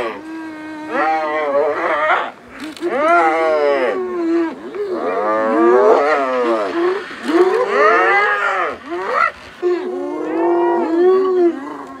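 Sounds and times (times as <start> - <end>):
hyenas calling: 0.0 - 12.0.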